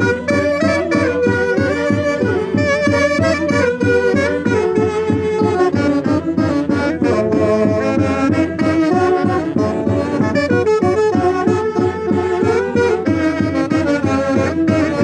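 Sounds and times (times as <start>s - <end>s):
saxophones playing dance tune: 0.0s - 15.0s
steady beat: 0.0s - 15.0s.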